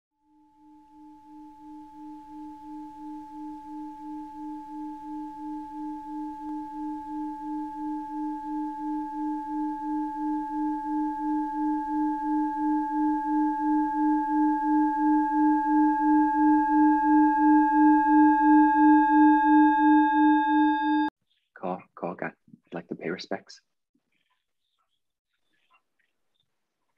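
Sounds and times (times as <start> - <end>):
singing bowl humming and ringing: 0.2 - 21.1.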